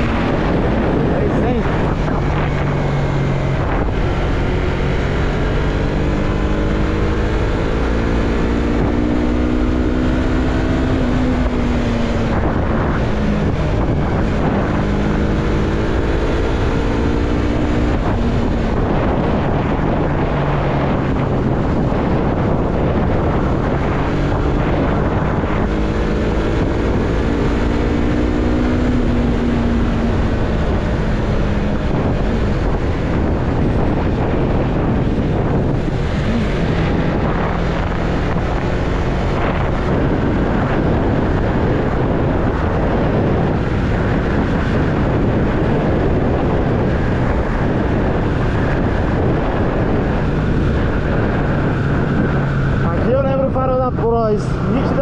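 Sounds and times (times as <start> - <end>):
motorcycle engine running: 0.0 - 55.0
wind rush on microphone: 0.0 - 55.0.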